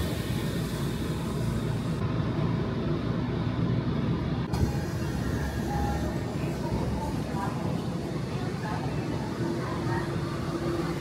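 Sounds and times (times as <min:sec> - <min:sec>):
subway train rumbling: 0:00.0 - 0:11.0.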